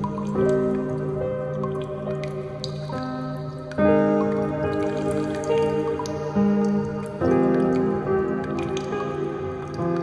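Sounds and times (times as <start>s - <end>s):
rain dripping: 0.0s - 10.0s
slow calm piano music: 0.0s - 10.0s.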